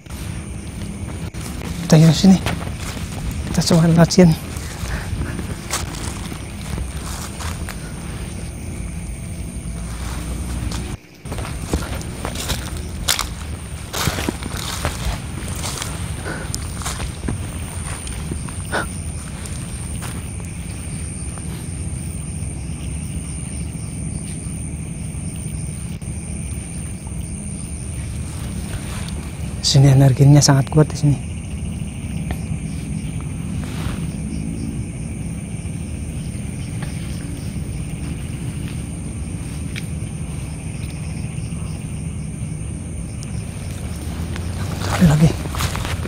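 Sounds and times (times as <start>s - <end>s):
footsteps crunching through dry leaves: 0.0s - 23.5s, 26.0s - 30.6s, 31.2s - 46.0s.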